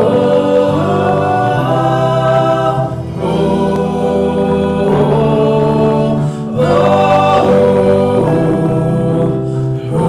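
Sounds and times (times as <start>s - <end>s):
band playing worship music: 0.0s - 10.0s
many voices singing: 0.0s - 10.0s.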